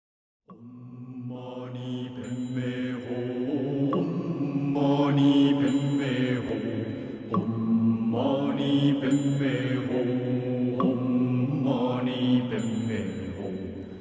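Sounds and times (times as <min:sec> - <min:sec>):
low-voiced mantra chanting: 0:00.5 - 0:14.0.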